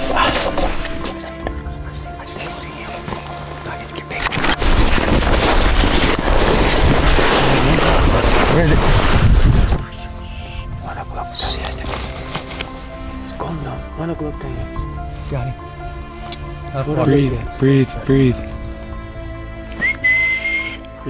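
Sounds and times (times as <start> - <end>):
background music: 0.0 - 21.0
wind rushing on microphone: 5.0 - 10.0.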